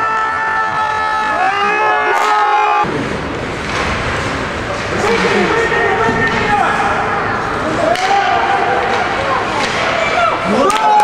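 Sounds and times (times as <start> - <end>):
noisy rink din: 0.0 - 11.0.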